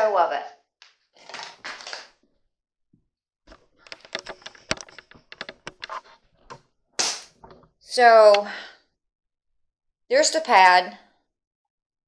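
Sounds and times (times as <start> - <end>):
camera handling rustle: 3.5 - 6.2
light clicks and taps: 3.5 - 6.6.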